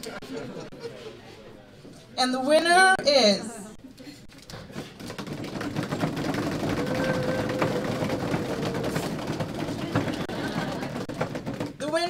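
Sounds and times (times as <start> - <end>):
rapid drumroll: 4.8 - 11.9.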